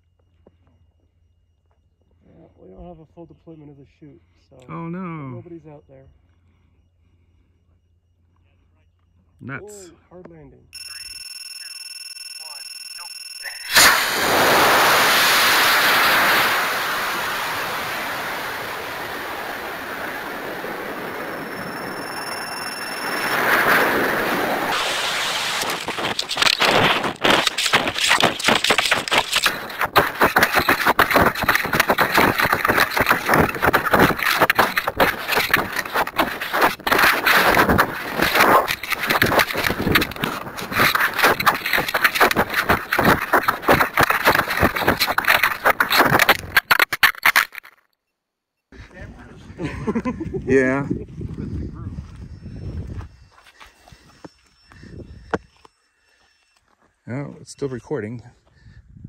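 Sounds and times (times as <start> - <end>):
rocket motor burning: 13.6 - 46.7
wind buffeting camera: 13.8 - 46.8, 48.9 - 55.6, 58.6 - 59.0.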